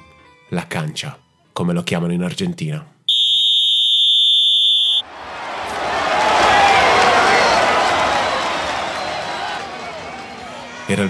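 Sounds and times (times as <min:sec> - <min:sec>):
referee's whistle blast: 0:03.1 - 0:05.1.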